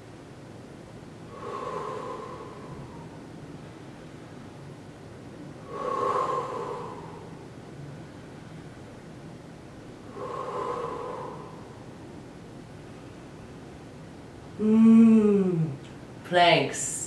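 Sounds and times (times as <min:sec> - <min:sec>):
faint room noise: 0:00.0 - 0:17.0
woman breathing hard: 0:01.3 - 0:04.2, 0:05.6 - 0:08.9, 0:10.1 - 0:12.1.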